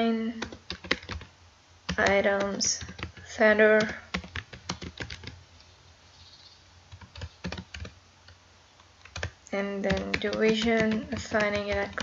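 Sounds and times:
typing on computer keyboard: 0.4s - 1.3s, 1.9s - 5.4s, 6.9s - 8.0s, 9.0s - 12.0s.

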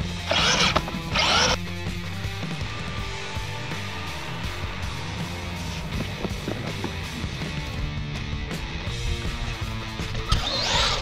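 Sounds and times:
rc truck electric motor bursts: 0.0s - 1.6s, 10.3s - 11.0s
background music: 0.0s - 11.0s.

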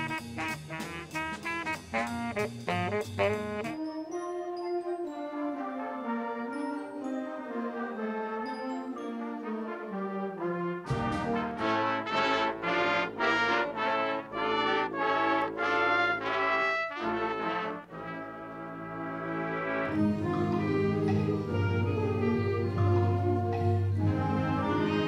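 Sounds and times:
concert band playing: 0.0s - 3.9s, 10.8s - 18.1s.

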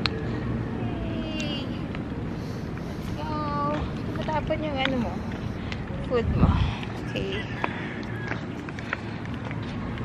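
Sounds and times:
wind buffeting microphone: 1.3s - 10.0s.

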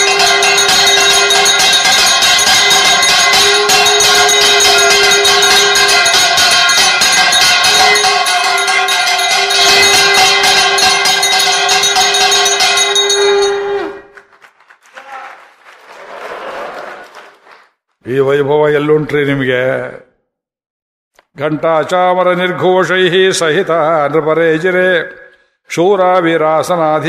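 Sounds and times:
temple bells ringing rapidly: 0.0s - 14.0s
held horn-like tone: 0.0s - 14.1s.

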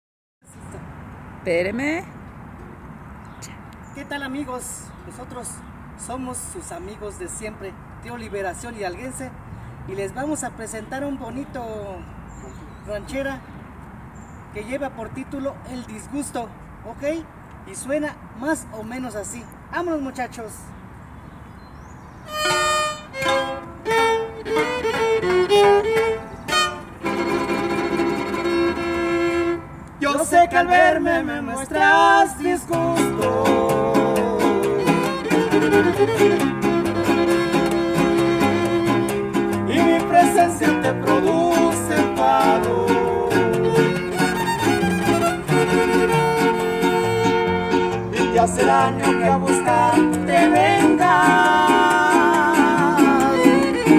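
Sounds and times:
strummed guitars: 22.3s - 29.6s, 32.6s - 53.9s
violin melody: 22.3s - 29.7s, 33.9s - 48.2s, 49.8s - 53.9s.

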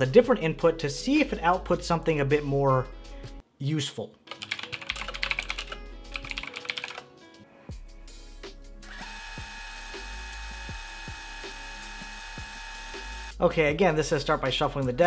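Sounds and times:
background music with beat: 0.0s - 3.4s, 4.4s - 15.0s
rapid keyboard typing: 4.3s - 7.0s.

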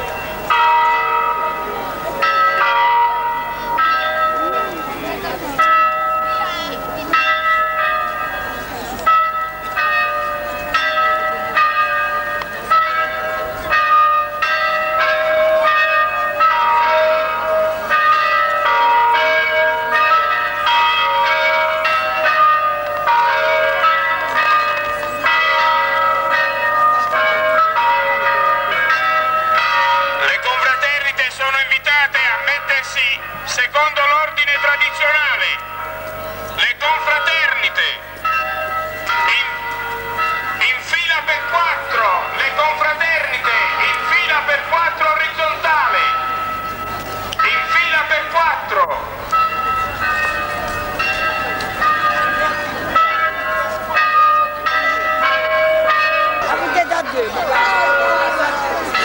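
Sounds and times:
crowd voices: 0.0s - 14.9s, 39.0s - 59.0s
church bells ringing: 0.0s - 59.0s.

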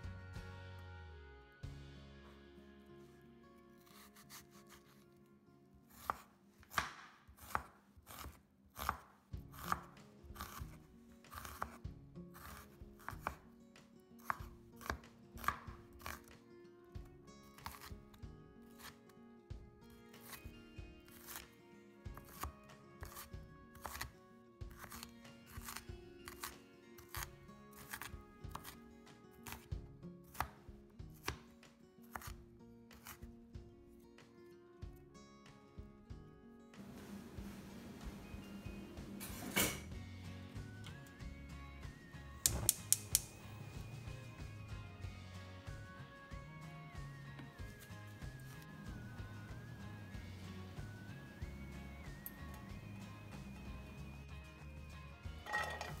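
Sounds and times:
quiet background music: 0.0s - 56.0s
knife chopping on wooden board: 5.9s - 11.8s, 12.4s - 13.4s, 14.2s - 16.3s, 17.6s - 17.9s, 22.2s - 24.1s, 24.7s - 28.8s, 30.3s - 31.5s, 32.1s - 33.3s
cleaver chopping on wooden board: 6.0s - 11.8s.

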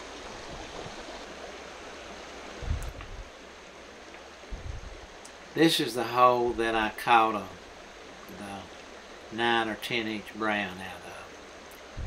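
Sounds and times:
rocky creek flowing: 0.0s - 12.0s
dull low thump: 4.5s - 5.0s.

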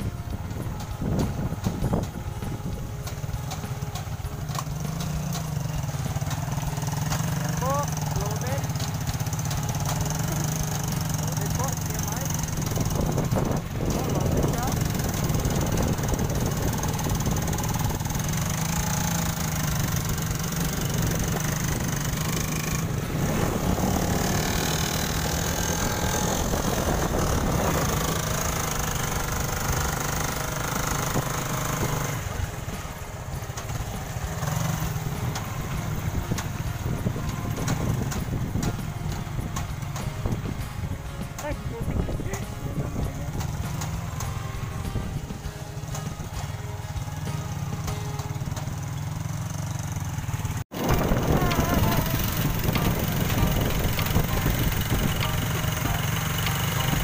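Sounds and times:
motorcycle engine drone: 0.0s - 57.0s
wind and road noise: 0.0s - 57.0s.

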